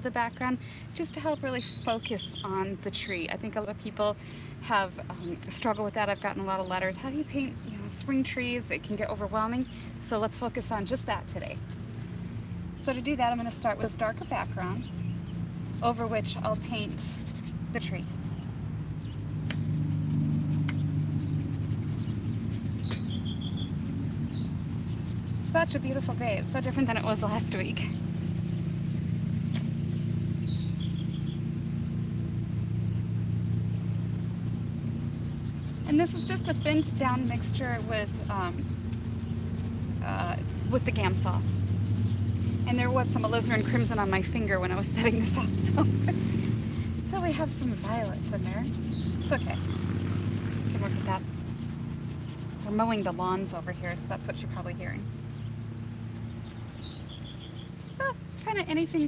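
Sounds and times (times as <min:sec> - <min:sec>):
bird chirps: 0:00.6 - 0:03.4, 0:12.9 - 0:17.0, 0:18.0 - 0:34.0, 0:34.7 - 0:43.9, 0:46.4 - 0:53.1, 0:53.7 - 0:59.0
lawn mowers droning: 0:07.6 - 0:59.0.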